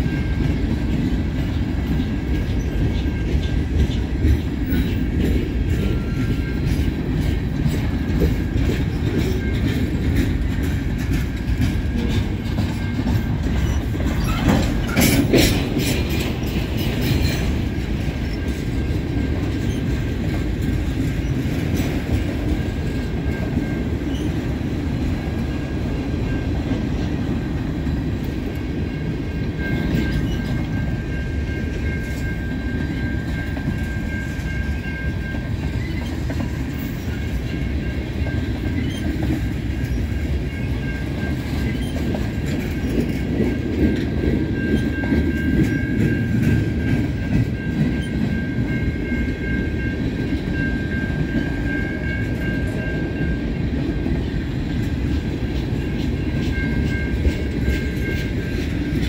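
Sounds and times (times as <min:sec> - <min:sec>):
steel wheels rumbling on rail: 0:00.0 - 0:59.0.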